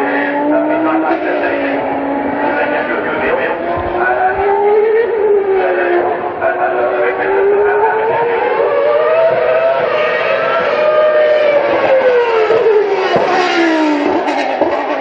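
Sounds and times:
racing car engine: 0.0s - 15.0s.

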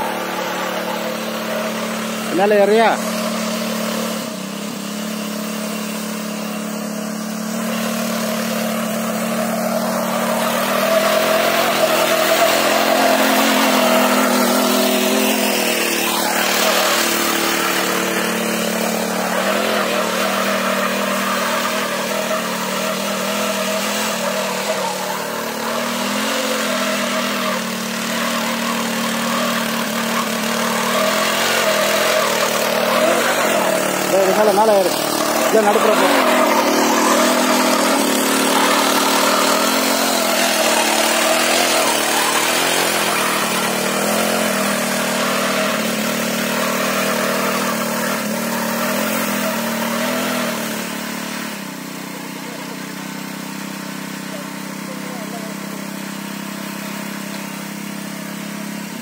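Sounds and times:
small petrol engine running: 0.0s - 59.0s
tines churning soil: 0.0s - 59.0s.

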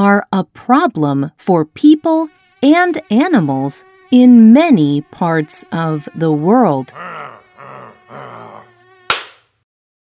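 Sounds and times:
low groans: 1.7s - 9.1s.

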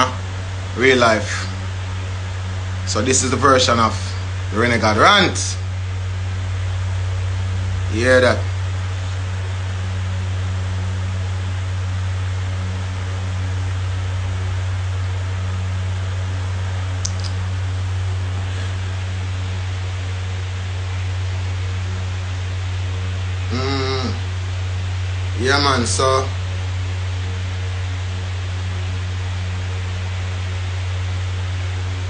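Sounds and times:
even hiss: 0.0s - 32.0s
steady low hum: 0.0s - 32.0s.

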